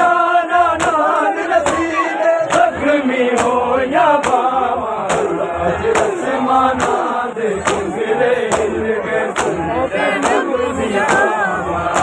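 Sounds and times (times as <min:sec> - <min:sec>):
crowd of men chanting: 0:00.0 - 0:12.0.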